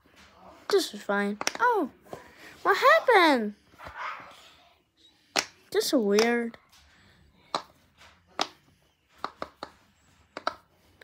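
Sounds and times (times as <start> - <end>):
pop-it fidget toy popping: 1.4 - 1.7.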